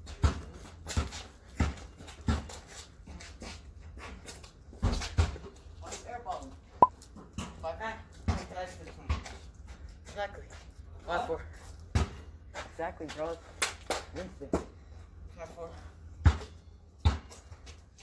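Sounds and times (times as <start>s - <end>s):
basketball bouncing on concrete: 0.1s - 2.6s, 16.2s - 17.4s.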